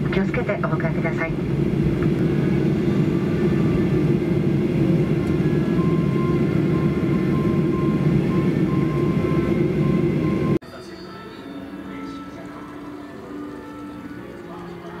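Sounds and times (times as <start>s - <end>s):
jet engines idling rumble: 0.0s - 10.6s
faint high beep: 5.4s - 14.6s.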